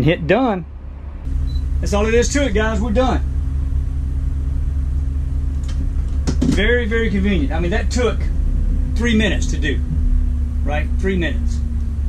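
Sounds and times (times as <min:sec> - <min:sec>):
motorhome engine idling: 0:00.7 - 0:12.0.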